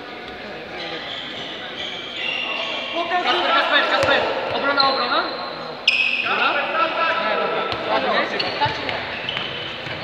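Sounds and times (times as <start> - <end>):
players' voices echoing: 0.0 - 10.0
shoes squeaking on floor: 0.7 - 7.2, 7.9 - 10.0
sharp squeal: 0.8 - 3.1, 4.7 - 6.4
ball bouncing: 4.0 - 4.6.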